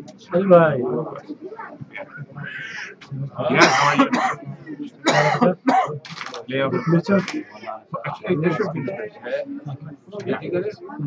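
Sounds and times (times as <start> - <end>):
men talking indistinctly: 0.0 - 11.0
man coughing: 3.5 - 4.4, 5.1 - 6.0.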